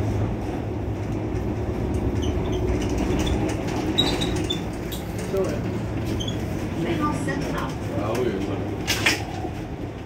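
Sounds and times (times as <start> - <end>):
bus idling hum: 0.0 - 10.0.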